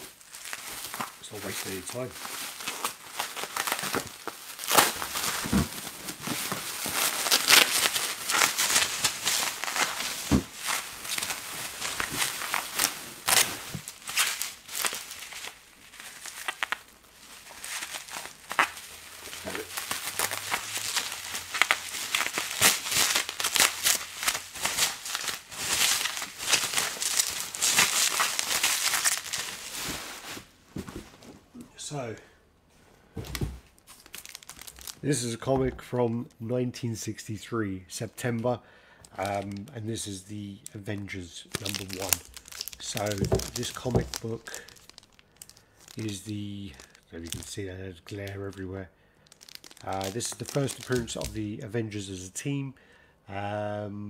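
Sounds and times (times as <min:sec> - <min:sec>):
plastic bags crinkling: 0:00.0 - 0:31.6, 0:33.2 - 0:36.4, 0:39.0 - 0:39.8, 0:40.6 - 0:51.6
bubble wrap rustling: 0:00.0 - 0:31.9, 0:33.1 - 0:36.4, 0:39.0 - 0:51.6.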